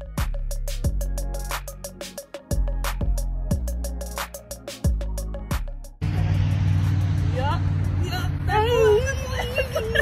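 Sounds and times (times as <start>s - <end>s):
low engine drone: 5.2s - 10.0s.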